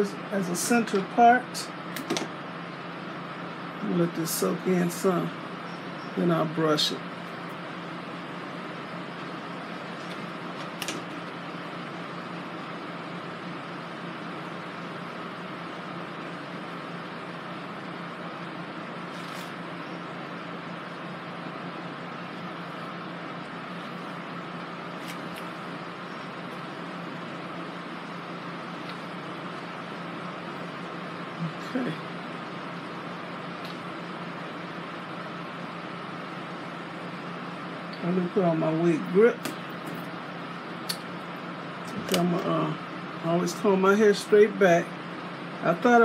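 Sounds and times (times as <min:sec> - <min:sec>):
fan hum and hiss: 0:00.0 - 0:46.0.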